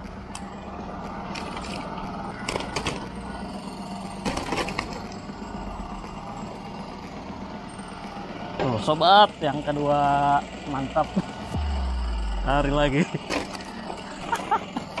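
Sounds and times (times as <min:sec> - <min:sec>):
generator engine humming: 0:00.0 - 0:15.0.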